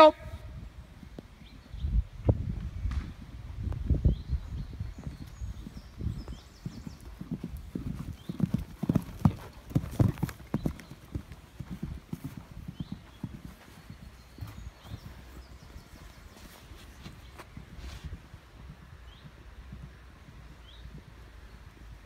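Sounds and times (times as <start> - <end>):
horse hoofbeats on sand: 4.1 - 22.0.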